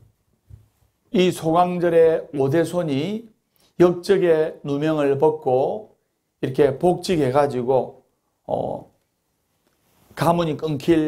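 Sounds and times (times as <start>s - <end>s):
man speaking: 1.1s - 9.0s, 10.2s - 11.0s.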